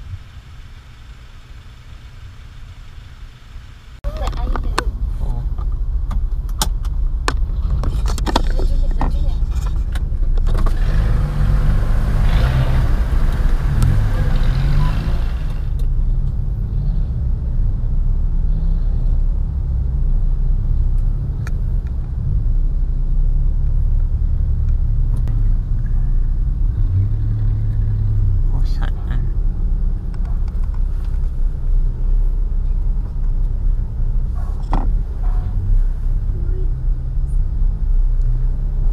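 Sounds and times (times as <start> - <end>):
car engine and road rumble: 0.0 - 38.9.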